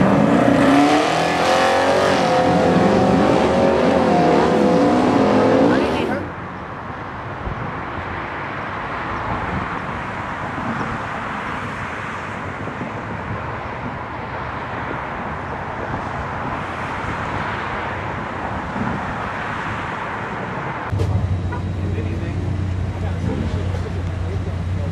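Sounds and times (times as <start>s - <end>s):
road traffic noise: 0.0s - 24.9s
low hum: 20.9s - 24.8s
faint voices: 21.0s - 24.9s.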